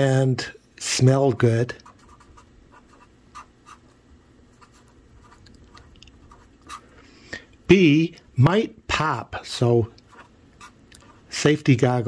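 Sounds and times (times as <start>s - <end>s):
marker pen writing on paper: 1.6s - 6.9s, 10.0s - 11.4s.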